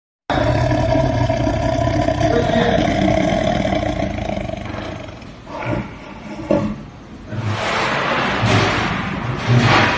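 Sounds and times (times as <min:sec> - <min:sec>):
tiger roaring: 0:00.3 - 0:06.4.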